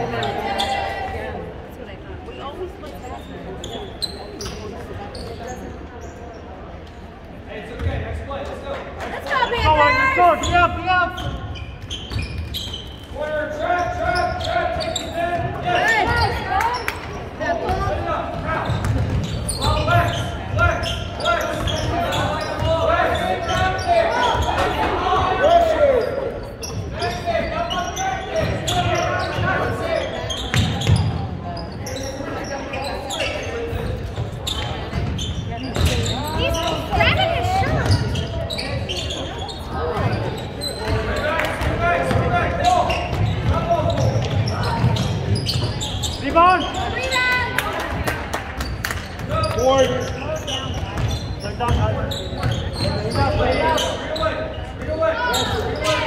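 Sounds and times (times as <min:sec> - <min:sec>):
basketball bouncing on wooden floor: 0:18.6 - 0:19.3.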